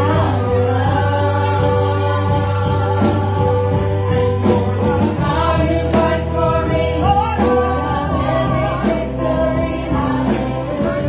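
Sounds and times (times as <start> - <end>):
gospel singers with band: 0.0 - 11.0.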